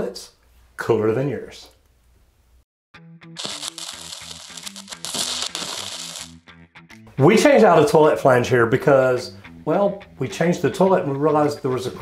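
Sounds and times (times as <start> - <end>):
bright hissing sound effect: 3.4 - 6.3.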